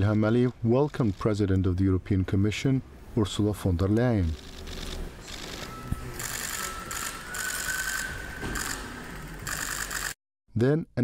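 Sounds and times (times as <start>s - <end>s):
camera shutters clicking: 4.4s - 10.2s.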